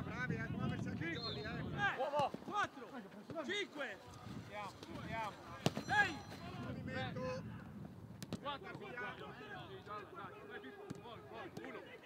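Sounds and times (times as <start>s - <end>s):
football being kicked: 5.6s - 5.9s.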